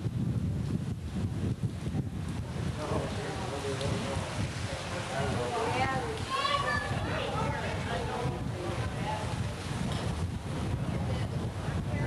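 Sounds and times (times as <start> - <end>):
low microphone rumble: 0.0 - 12.0
indistinct chatter: 3.0 - 10.2.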